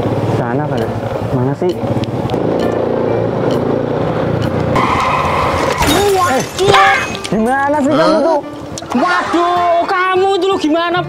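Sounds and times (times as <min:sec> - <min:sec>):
bicycle crashing into scooter: 0:04.8 - 0:07.4.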